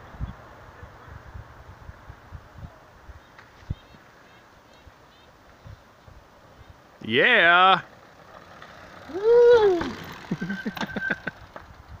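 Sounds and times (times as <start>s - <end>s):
mountain bike clattering: 7.3s - 12.0s
person whooping: 9.1s - 10.1s.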